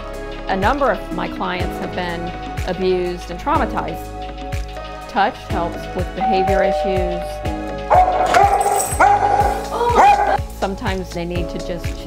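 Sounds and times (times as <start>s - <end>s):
dog barking: 7.9s - 10.4s.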